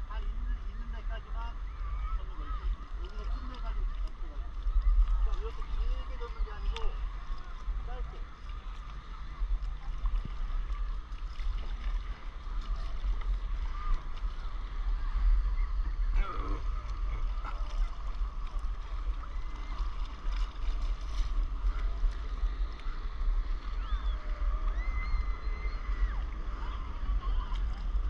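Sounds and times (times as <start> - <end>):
faint indistinct voices: 0.0 - 28.0
water lapping: 0.0 - 28.0
wind rumble on microphone: 0.0 - 28.0.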